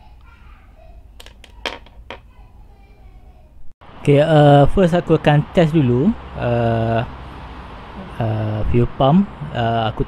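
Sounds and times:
small parts clattering on tabletop: 1.2 - 2.3.

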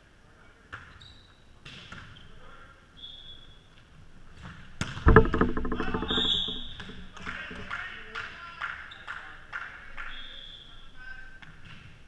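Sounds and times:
ringing pitched sound: 5.1 - 7.3.

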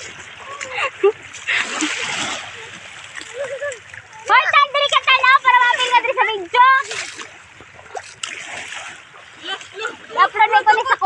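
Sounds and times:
seawater splashing: 0.0 - 11.0.

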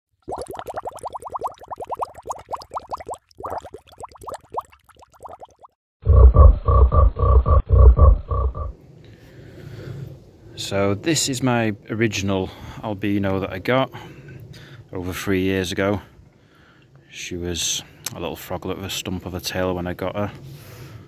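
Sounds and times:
deep frog croaking: 6.0 - 8.8
frog trilling: 6.1 - 8.8.

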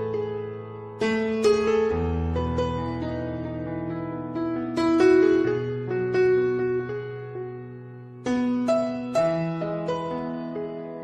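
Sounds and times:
slow solo piano: 0.0 - 11.0.

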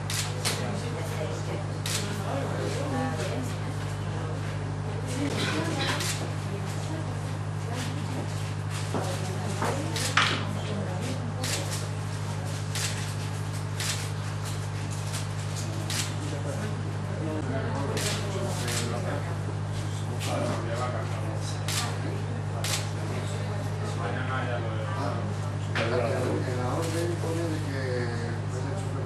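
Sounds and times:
faint murmured voices: 0.0 - 29.0
low electrical hum: 0.0 - 29.0
camera shutters clicking: 9.9 - 10.3, 13.8 - 14.1, 15.1 - 16.2.

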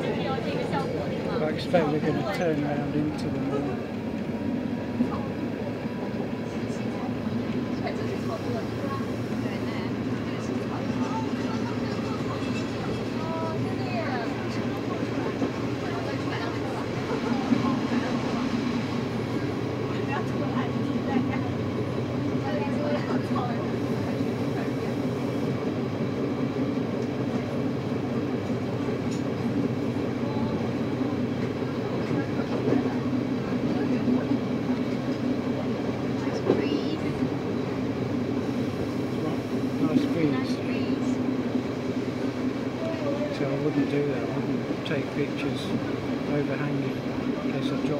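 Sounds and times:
train running gear rumble: 0.0 - 47.9.

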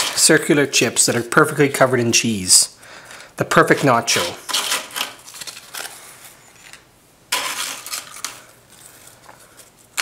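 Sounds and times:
tortilla chips rustling in bowl: 3.7 - 10.0.

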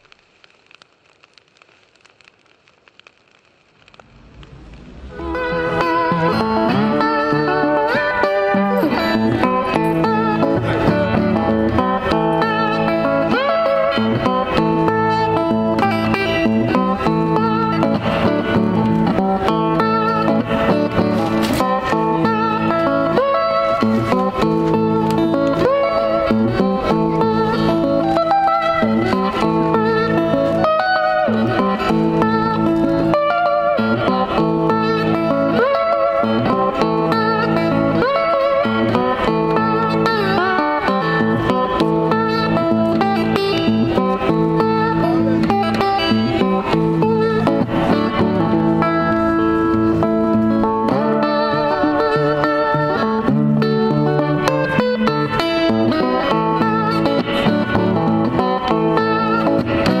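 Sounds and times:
slide resonator guitar blues: 0.4 - 60.0.

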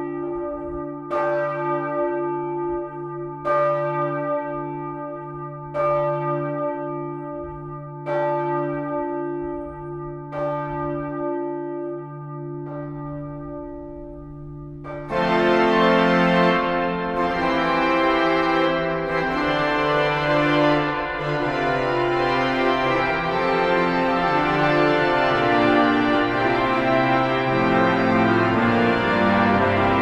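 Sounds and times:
church bell tolling: 0.0 - 30.0.

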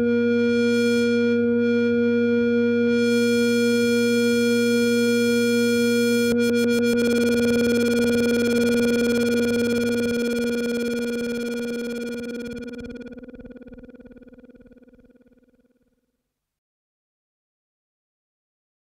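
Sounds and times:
buzzy synthesizer note: 0.0 - 14.4
low bass tone: 0.0 - 14.7.

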